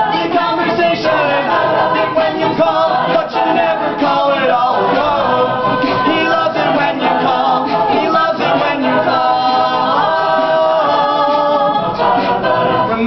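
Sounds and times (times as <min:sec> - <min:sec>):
a cappella group singing: 0:00.0 - 0:13.0.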